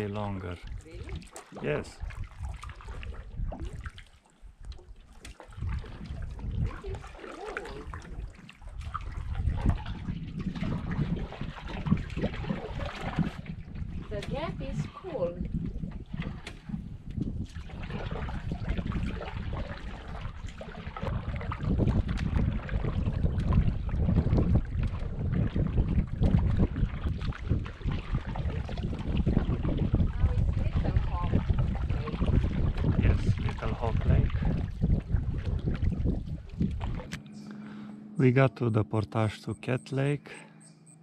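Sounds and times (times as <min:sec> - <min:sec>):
wind buffeting microphone: 0:00.0 - 0:37.6
paddle strokes splashing water: 0:00.0 - 0:37.8.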